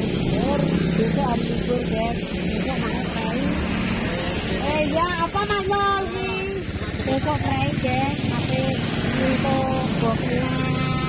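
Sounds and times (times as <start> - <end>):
motor vehicle engine running: 0.0 - 11.0
people talking: 0.2 - 11.0.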